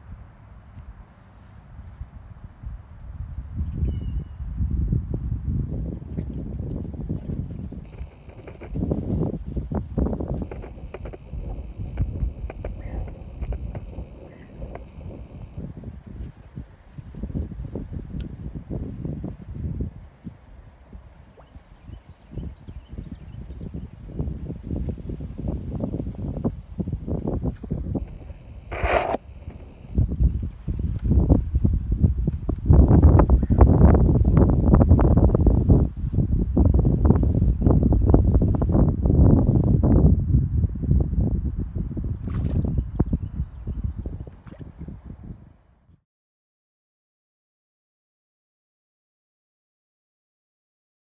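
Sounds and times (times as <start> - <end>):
wind buffeting microphone: 1.7 - 45.9
faint clicks: 10.4 - 15.0.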